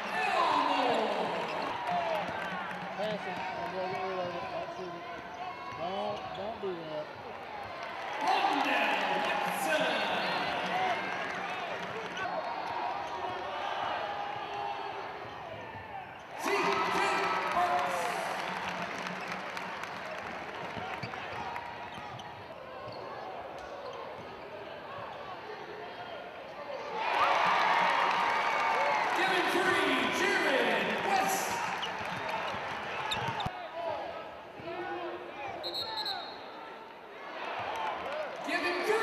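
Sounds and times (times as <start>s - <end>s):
voices in an arena: 0.0s - 39.0s.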